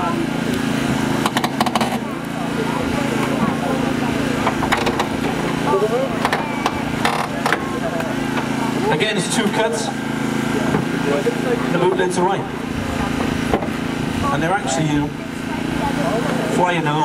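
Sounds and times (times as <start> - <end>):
small engine running: 0.0 - 17.0
hydraulic cutters cracking metal: 0.5 - 2.4, 4.4 - 8.5.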